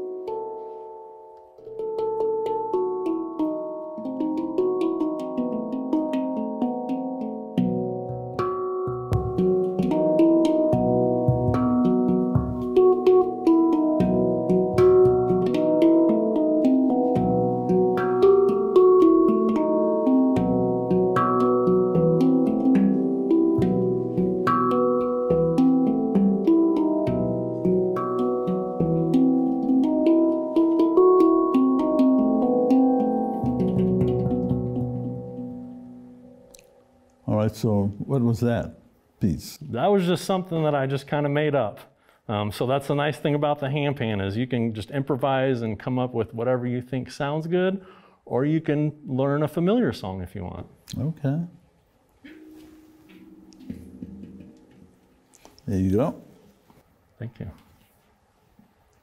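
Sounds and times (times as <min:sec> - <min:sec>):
handpan melody: 0:00.0 - 0:37.2, 0:52.2 - 0:56.1.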